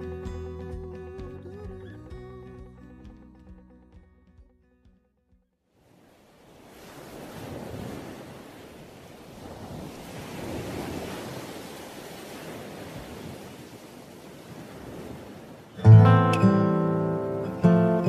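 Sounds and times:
surf washing on shore: 5.7 - 18.0.

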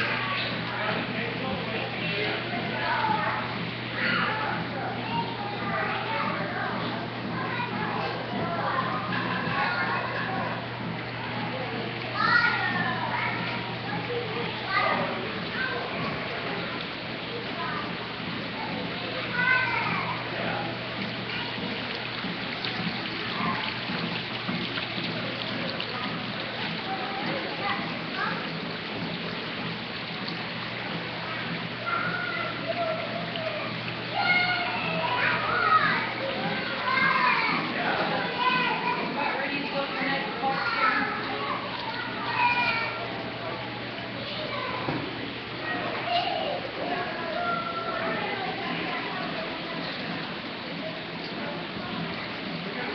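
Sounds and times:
play area hubbub: 0.0 - 52.9
young children calling and chattering: 0.0 - 52.9.

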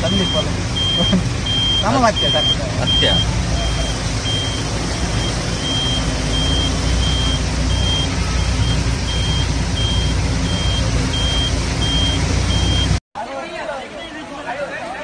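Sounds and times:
low engine rumble: 0.0 - 13.0
vehicle warning beeps: 0.0 - 13.0
heavy rain and floodwater: 0.0 - 15.0.

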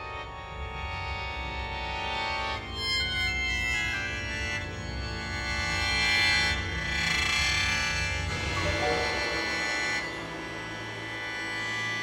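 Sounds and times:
low sustained note: 8.2 - 12.0
mouth organ high tones: 8.5 - 10.4.

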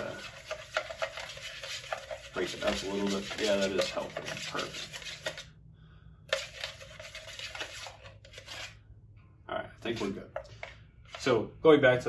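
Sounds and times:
stirrer scraping paint can: 0.0 - 5.6, 6.3 - 8.8.

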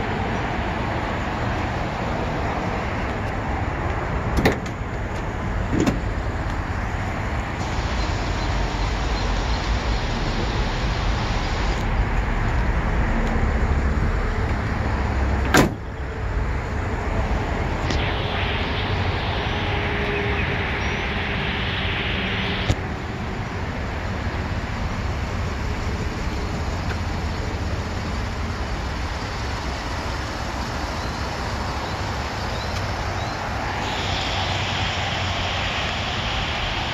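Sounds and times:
tailgate slamming shut: 4.3 - 4.8, 5.7 - 6.1, 15.4 - 15.9
low rumble: 5.3 - 36.9.

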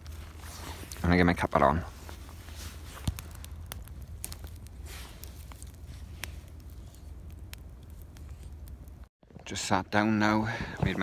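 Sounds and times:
campfire crackling and popping: 0.0 - 9.1
low steady rumble: 0.0 - 11.0.

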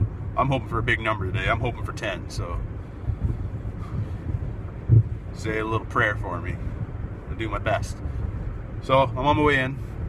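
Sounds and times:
car driving rumble inside cabin: 0.0 - 10.0.

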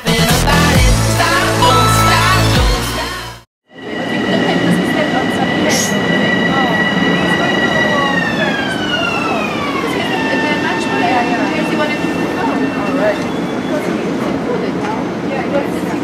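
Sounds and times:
electric train whine: 3.7 - 16.0.

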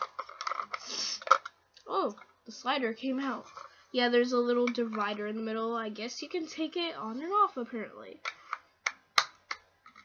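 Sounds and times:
plastic scrape: 0.0 - 1.5, 3.2 - 3.9.

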